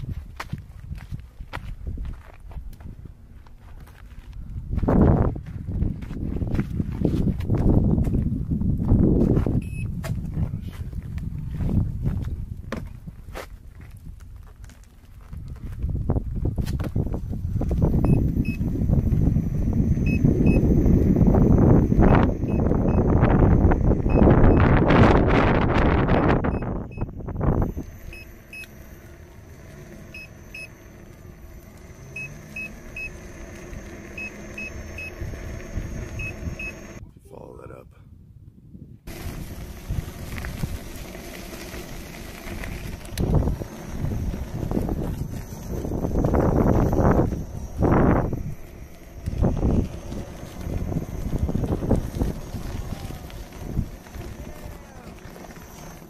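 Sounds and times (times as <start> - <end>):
wind buffeting microphone: 0.0 - 37.3, 38.0 - 56.0
short high beeps: 9.6 - 9.9, 20.0 - 20.7, 24.1 - 24.7, 36.2 - 37.0
electric motor whine: 15.2 - 37.0, 39.1 - 56.0.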